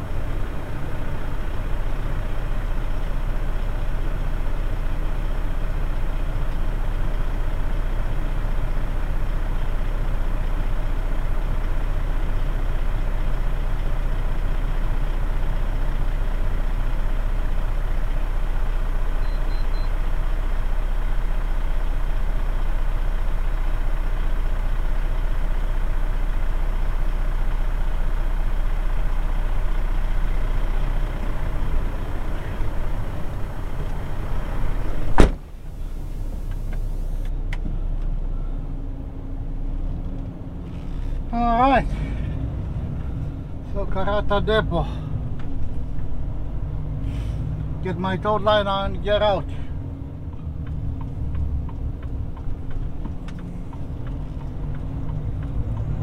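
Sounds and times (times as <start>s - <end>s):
diesel engine idling: 0.0s - 56.0s.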